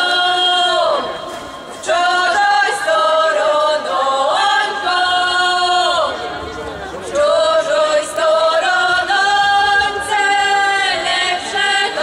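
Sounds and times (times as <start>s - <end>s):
women singing unaccompanied: 0.0s - 6.2s, 7.0s - 12.0s.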